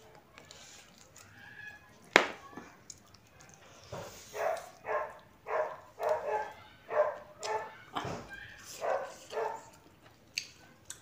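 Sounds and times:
dog barking: 4.3s - 7.8s, 8.8s - 9.7s.

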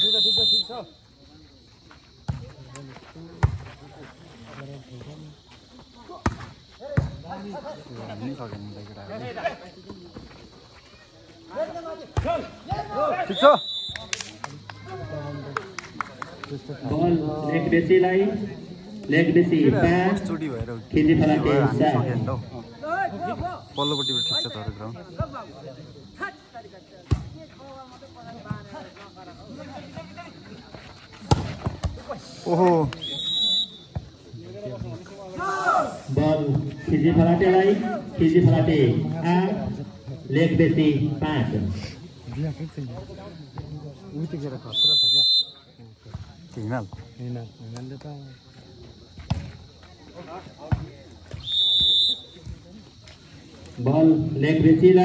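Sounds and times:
referee's whistle blasts: 0.0s - 0.9s, 13.2s - 14.1s, 23.7s - 24.7s, 33.0s - 33.9s, 44.7s - 45.6s, 51.4s - 52.4s
voices and shouts: 0.0s - 49.1s
spectators chatting: 0.0s - 55.0s.

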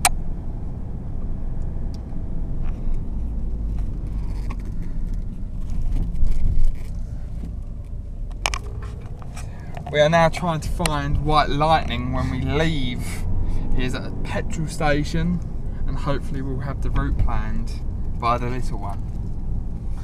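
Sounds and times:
car cabin engine and tyre rumble: 0.0s - 20.0s.

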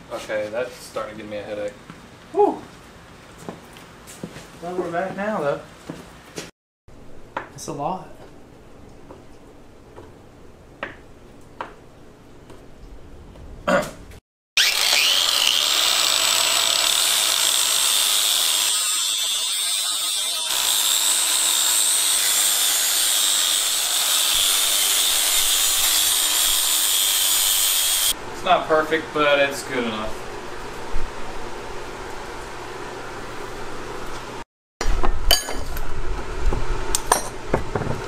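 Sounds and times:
angle grinder grinding steel: 14.6s - 28.2s.

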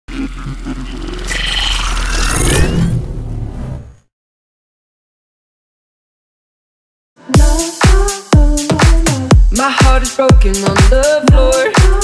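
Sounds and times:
rising sweep: 0.4s - 4.1s.

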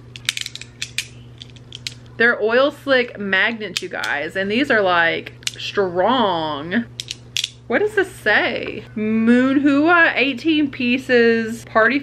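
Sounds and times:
magnetic balls clicking together: 0.1s - 2.0s, 7.0s - 7.6s.

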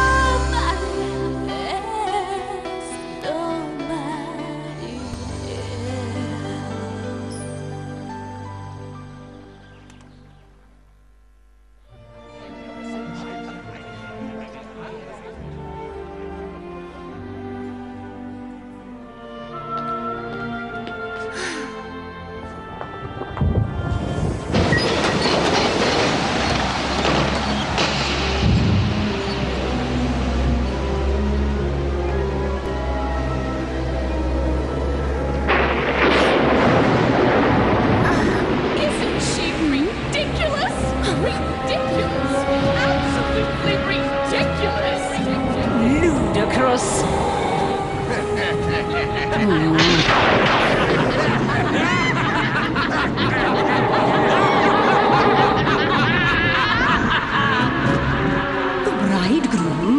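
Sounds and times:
music: 0.0s - 11.0s, 11.8s - 59.9s
storm rushing with low rumble: 23.0s - 31.8s, 33.8s - 59.9s
cartoon boom crash: 49.8s - 52.4s, 53.2s - 56.7s.

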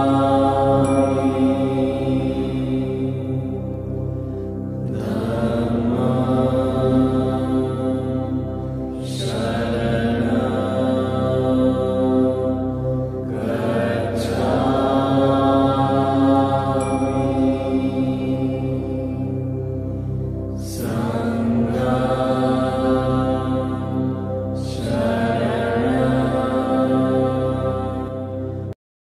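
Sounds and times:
steady musical drone: 0.0s - 28.7s
chanting with long held notes: 0.0s - 28.8s.

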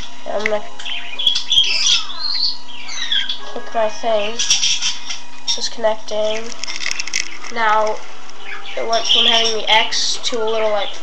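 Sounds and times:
faint steady hum: 0.0s - 11.0s
bird chirping and squawking: 0.8s - 11.0s
sharp clicks: 6.3s - 8.5s.

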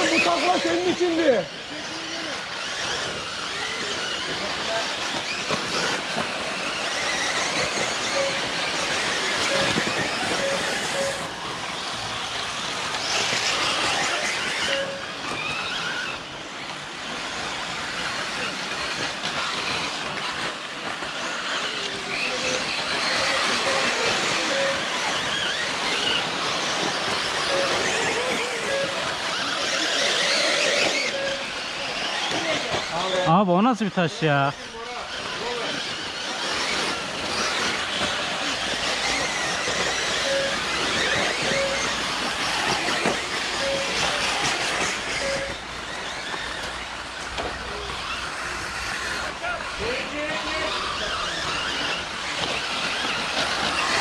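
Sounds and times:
electric toy cars racing: 0.0s - 54.0s
thin motor whines: 0.0s - 54.0s
murmur of voices: 16.9s - 54.0s.

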